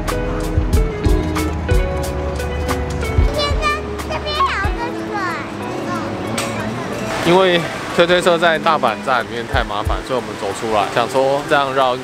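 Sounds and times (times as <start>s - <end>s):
background music: 0.0s - 12.0s
child calling out excitedly: 3.3s - 6.3s.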